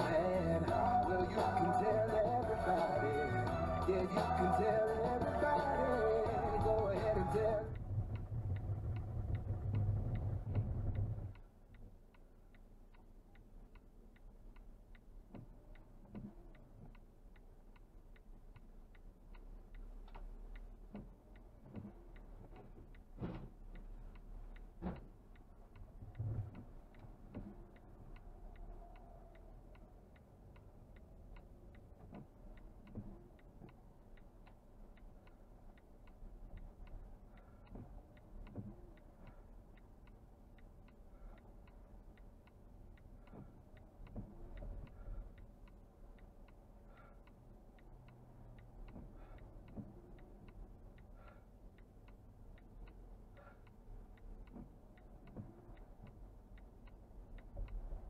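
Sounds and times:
low road rumble: 0.0 - 58.0
turn-signal relay ticking: 0.0 - 58.0.

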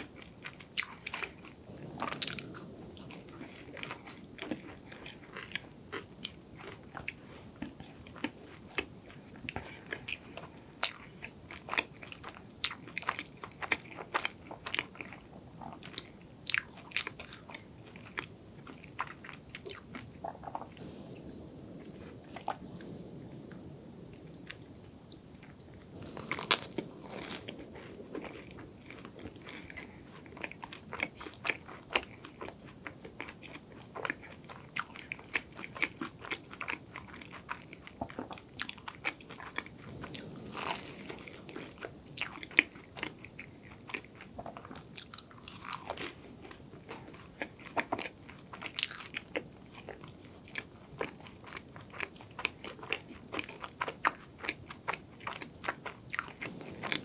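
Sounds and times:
crunchy pastry chewing: 0.0 - 23.0, 23.9 - 57.0.

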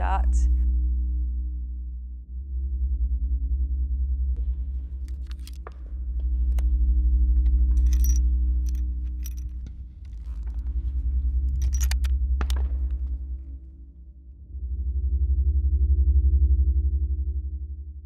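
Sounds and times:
low music drone: 0.0 - 18.0
rifle bolt metallic clicks: 5.1 - 5.7, 11.6 - 12.6.

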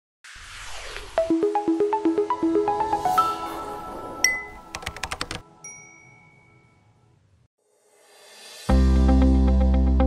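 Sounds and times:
intro music: 1.2 - 6.2
typing-like clicks: 4.7 - 5.4
bright high chime: 5.6 - 7.1.

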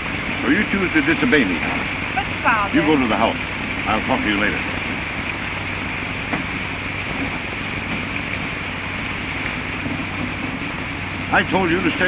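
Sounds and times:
film soundtrack hiss: 0.0 - 12.0
low hum: 0.0 - 12.0.

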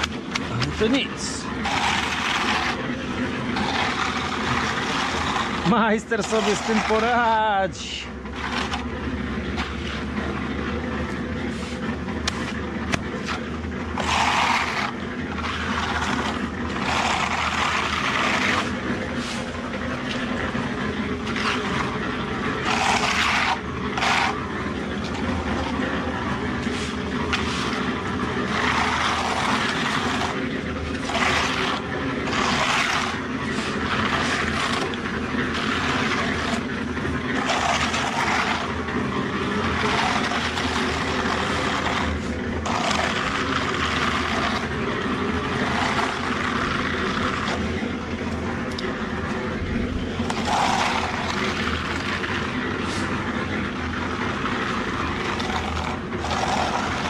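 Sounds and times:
engine-like drone: 0.0 - 57.0
float scraping wet concrete: 0.0 - 57.0.

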